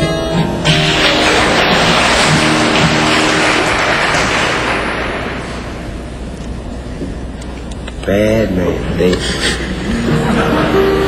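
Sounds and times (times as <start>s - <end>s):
audience applauding: 0.7s - 6.0s.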